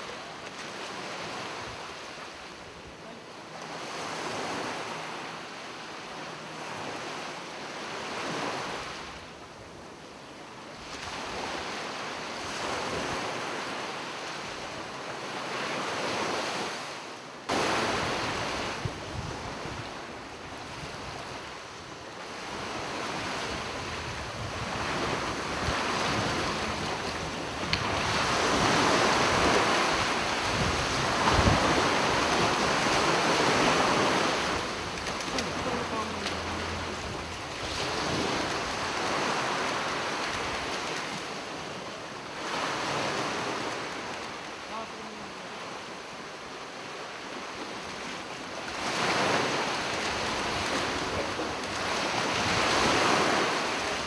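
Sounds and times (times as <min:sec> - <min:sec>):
ocean surf washing in: 0:00.0 - 0:54.0
wind buffeting microphone: 0:17.6 - 0:41.2.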